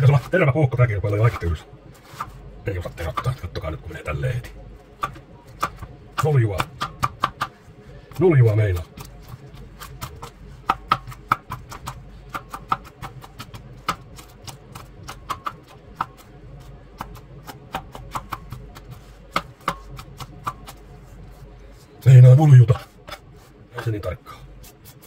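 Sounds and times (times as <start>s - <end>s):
knife chopping on plastic board: 5.0s - 16.3s, 17.0s - 20.8s.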